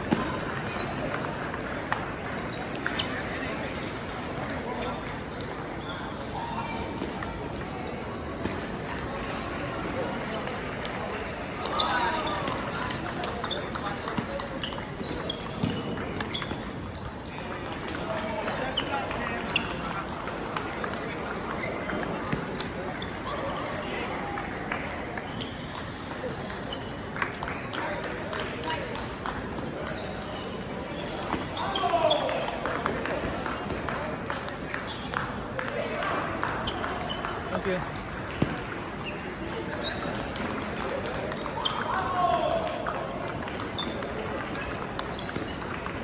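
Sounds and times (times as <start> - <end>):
hubbub of voices: 0.0 - 46.0
ping-pong balls clicking: 0.1 - 24.1, 24.8 - 42.1, 42.8 - 46.0.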